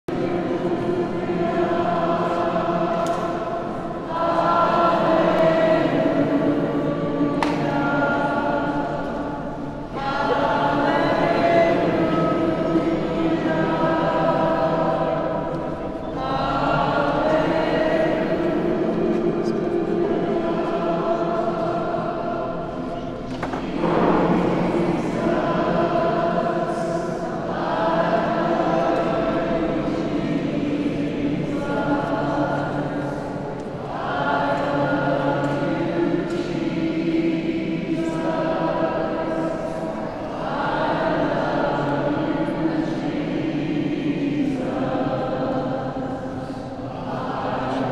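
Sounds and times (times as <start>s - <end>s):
choir singing in echoing church: 0.0s - 47.9s.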